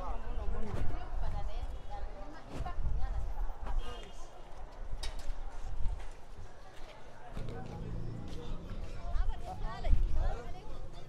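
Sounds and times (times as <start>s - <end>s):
low street noise rumble: 0.0s - 11.0s
footsteps on pavement: 5.9s - 10.2s.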